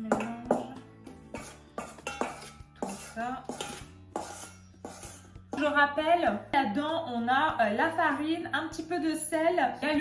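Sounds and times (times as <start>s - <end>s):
spoon clinking against metal bowl: 0.0s - 5.7s
background music: 0.0s - 10.0s.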